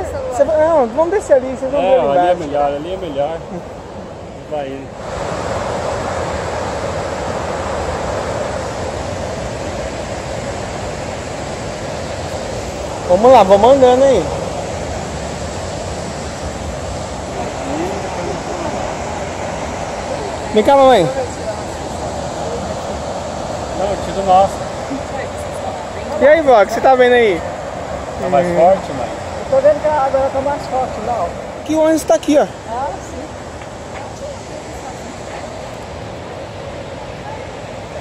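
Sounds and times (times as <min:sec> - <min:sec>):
waterfall roaring: 0:00.0 - 0:38.0.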